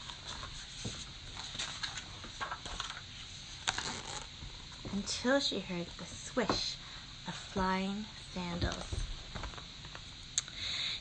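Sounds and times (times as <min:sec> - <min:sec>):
book pages rustling: 0:00.0 - 0:04.3.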